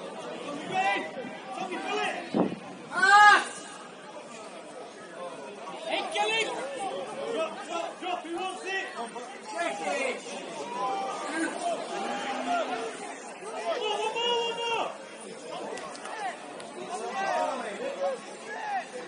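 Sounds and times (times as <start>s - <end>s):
loud drawn-out shout: 2.9s - 3.7s
voices shouting and calling: 5.6s - 19.0s.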